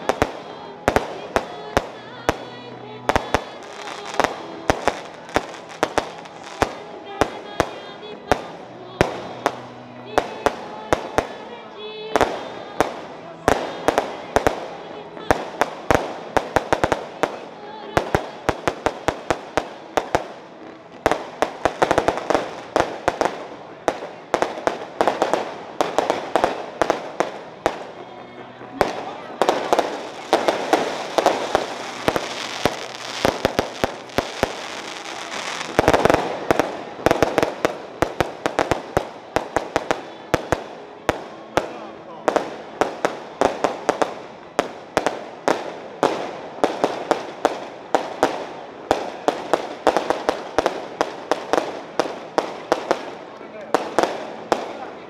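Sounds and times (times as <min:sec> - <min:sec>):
crowd murmuring: 0:00.0 - 0:55.0
fireworks bangs and crackles: 0:00.0 - 0:55.0.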